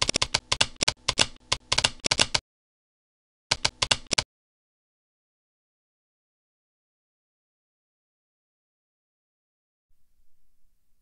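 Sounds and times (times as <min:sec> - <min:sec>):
keys typing: 0:00.0 - 0:02.4, 0:03.5 - 0:04.2.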